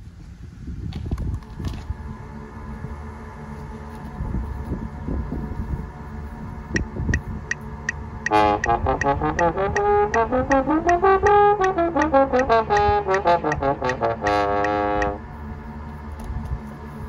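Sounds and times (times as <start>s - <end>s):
traffic rumble: 0.0s - 17.0s
wind: 0.0s - 17.0s
steady ticking: 6.8s - 15.2s
trombone notes: 8.2s - 15.3s.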